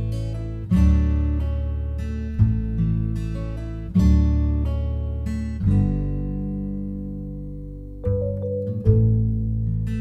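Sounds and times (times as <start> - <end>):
guitar chord ringing: 6.0 - 10.0.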